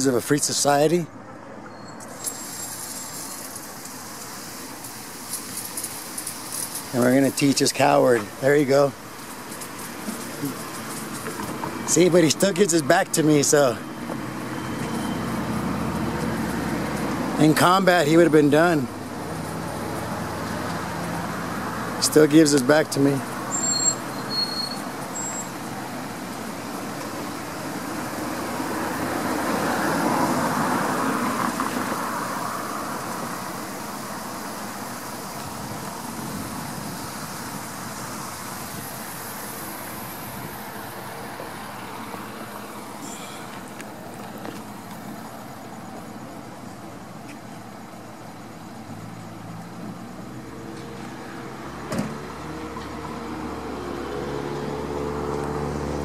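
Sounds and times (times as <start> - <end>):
vehicle passing: 0.0 - 46.8, 48.4 - 56.0
road traffic noise: 0.0 - 56.0.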